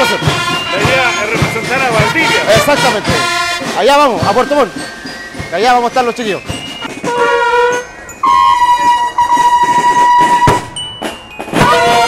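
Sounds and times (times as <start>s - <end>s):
marching band trumpets: 0.0s - 10.8s, 11.4s - 12.0s
drum hit: 0.2s - 4.6s, 9.2s - 12.0s.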